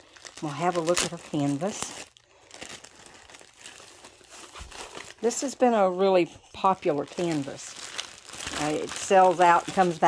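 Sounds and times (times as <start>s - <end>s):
plastic bag crinkling: 0.0s - 5.9s, 6.6s - 10.0s.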